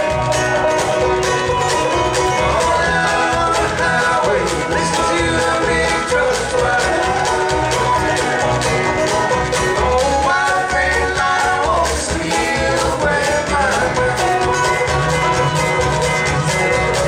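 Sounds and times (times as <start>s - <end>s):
banjo picking: 0.0s - 17.0s
bass line: 0.0s - 17.0s
mandolin picking: 0.0s - 17.0s
men singing together: 2.4s - 14.9s.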